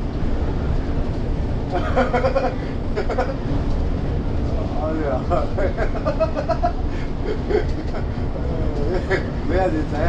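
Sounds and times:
bus engine and road rumble: 0.0s - 10.0s
people talking: 4.5s - 6.5s, 8.4s - 10.0s.

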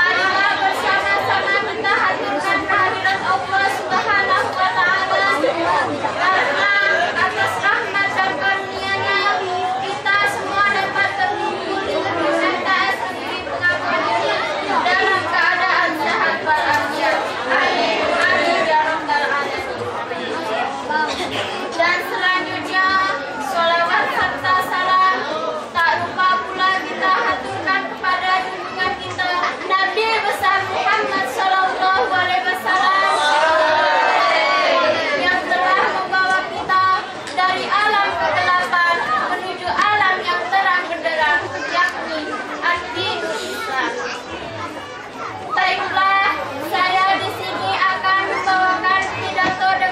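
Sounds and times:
chatter of voices: 0.0s - 49.9s.

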